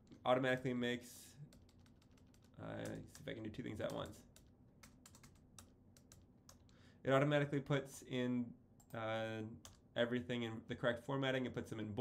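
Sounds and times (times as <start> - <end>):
faint keyboard typing: 1.4 - 6.8, 9.6 - 9.9.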